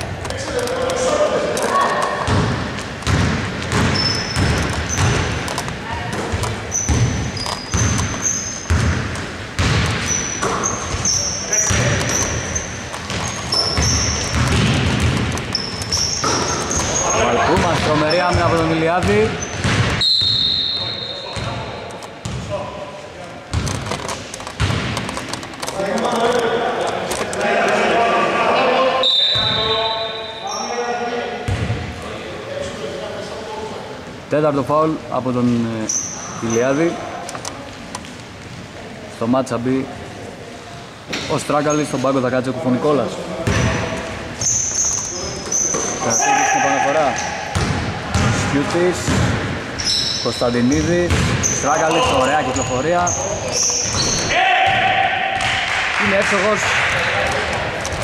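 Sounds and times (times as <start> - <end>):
basketball bouncing on hardwood: 2.3 - 5.4, 6.1 - 12.4, 13.0 - 16.9, 17.6 - 20.0, 24.6 - 25.1, 47.5 - 48.4, 50.8 - 52.2
shoe squeaks: 3.7 - 8.8, 9.9 - 14.8, 15.4 - 21.6, 29.0 - 30.8, 35.8 - 37.0, 43.6 - 47.5, 49.8 - 54.4.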